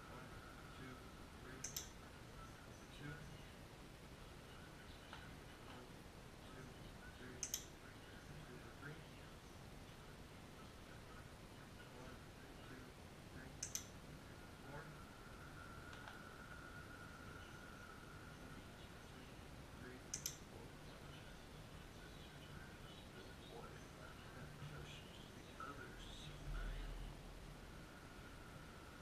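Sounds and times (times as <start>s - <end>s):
sharp clicks: 1.6s - 2.0s, 7.4s - 7.8s, 13.6s - 14.0s, 15.9s - 16.2s, 20.1s - 20.5s
quick sharp clicks: 13.6s - 13.9s.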